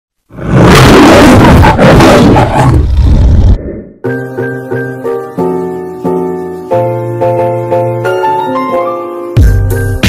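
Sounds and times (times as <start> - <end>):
lion roaring: 0.3 - 3.9.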